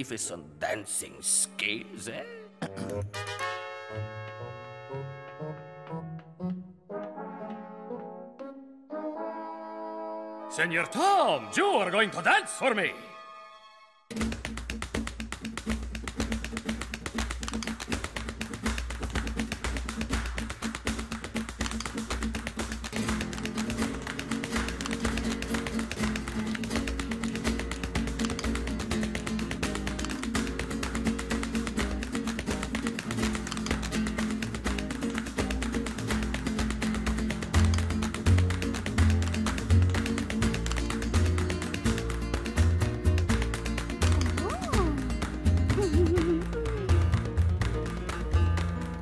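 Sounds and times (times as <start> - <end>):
flamenco music: 14.1 - 49.0
tap-dance steps on wooden stage: 14.1 - 49.0.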